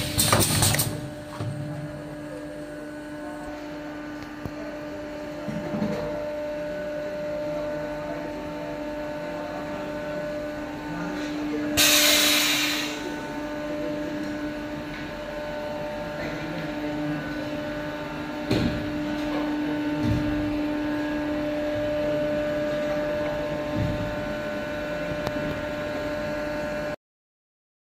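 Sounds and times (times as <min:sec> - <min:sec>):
machine motor humming: 0:00.0 - 0:27.0.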